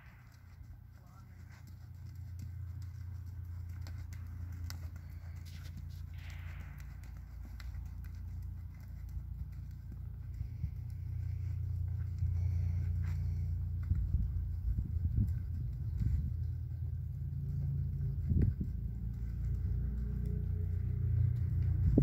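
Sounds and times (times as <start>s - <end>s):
horse hoofbeats on sand: 0.0s - 22.0s
steady low rumble: 0.0s - 22.0s.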